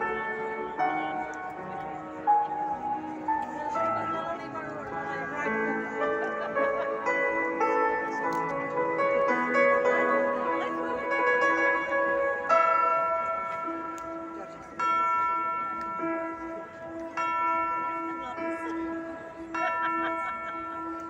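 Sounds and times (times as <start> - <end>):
band playing bell-like chords: 0.0 - 21.0.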